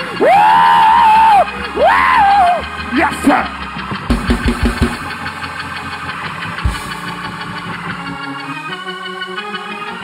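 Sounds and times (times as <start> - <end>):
church organ sustained chord: 0.0 - 10.0
low hits: 3.6 - 8.1.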